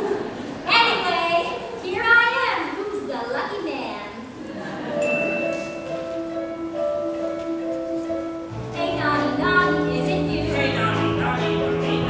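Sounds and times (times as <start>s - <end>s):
pit band playing held chords: 5.0s - 12.0s.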